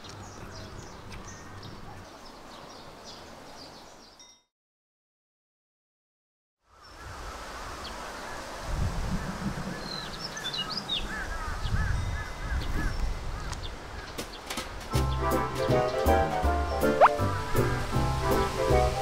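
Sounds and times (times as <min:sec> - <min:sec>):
birds calling: 0:09.2 - 0:19.0
music: 0:14.9 - 0:19.0.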